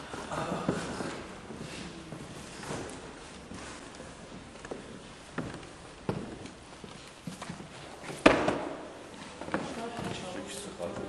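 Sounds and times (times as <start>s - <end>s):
footsteps on wooden floor: 0.1s - 11.0s.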